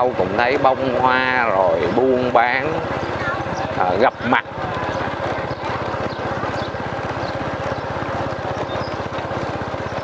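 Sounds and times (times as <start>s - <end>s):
road and wind noise: 0.0s - 10.0s
small motorbike engine running: 0.0s - 10.0s.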